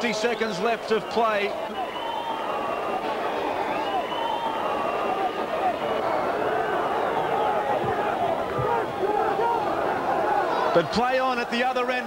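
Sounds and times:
football crowd cheering: 0.0 - 12.0.

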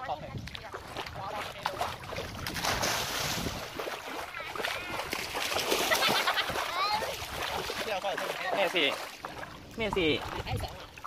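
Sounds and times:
pool water splashing: 0.0 - 11.0.

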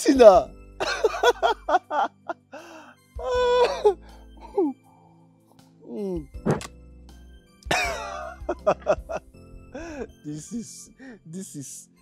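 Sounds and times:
quiet background music: 0.0 - 12.0
man laughing hard: 0.8 - 2.4, 7.7 - 9.2.

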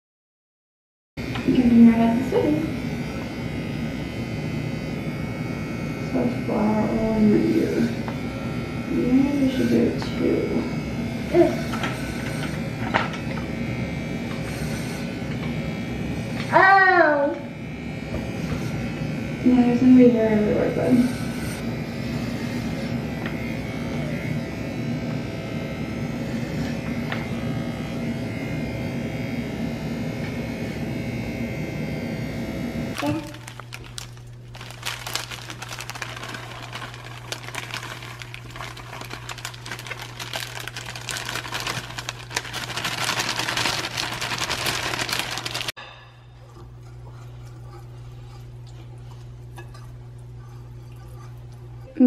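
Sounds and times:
electric hair clippers buzzing: 1.2 - 45.8
stirring in a glass bowl: 33.5 - 45.7, 46.4 - 52.0.

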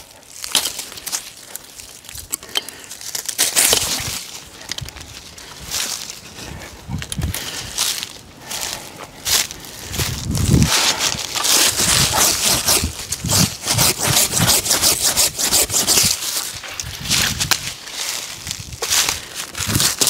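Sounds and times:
footsteps through grass and brush: 0.0 - 20.0
handsaw cutting brush: 10.7 - 16.6.

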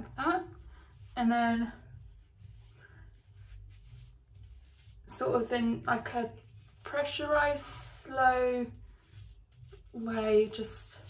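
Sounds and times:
faint low rumble: 0.0 - 11.0.

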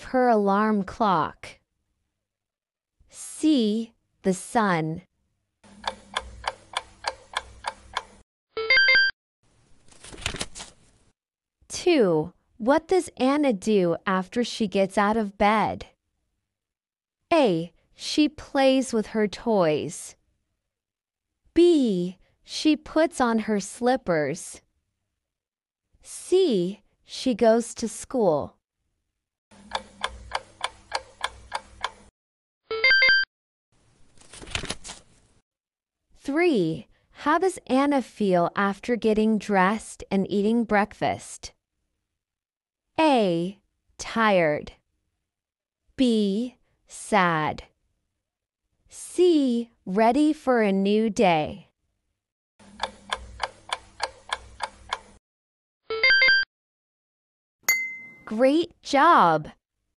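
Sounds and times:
clock ticking: 5.7 - 8.2, 29.6 - 32.1, 52.7 - 55.2
bright chime: 57.7 - 58.3.

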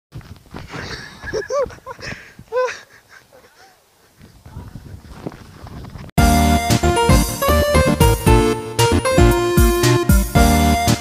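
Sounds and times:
microphone rumbling and rustling: 0.1 - 2.6, 4.1 - 6.2.

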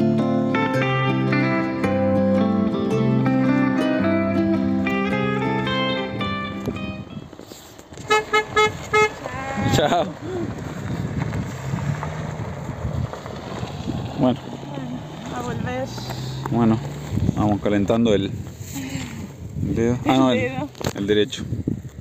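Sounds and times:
guitar music: 0.0 - 7.4
outdoor noise: 0.0 - 22.0
vehicle horn toots: 8.0 - 9.8.

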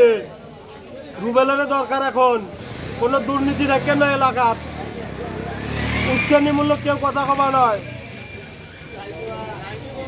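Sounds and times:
low street noise: 0.0 - 10.0
people talking a little way off: 0.0 - 10.0.

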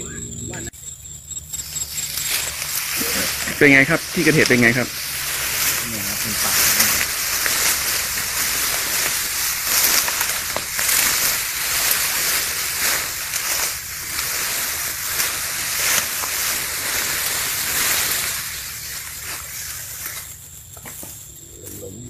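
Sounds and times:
tall grass rustling and swishing: 1.4 - 21.8.

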